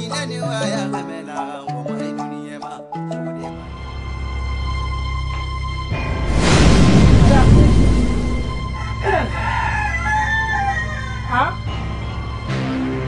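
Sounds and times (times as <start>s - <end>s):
background music: 0.0s - 13.0s
loud noisy burst: 6.2s - 8.8s
rooster crowing: 8.6s - 11.6s.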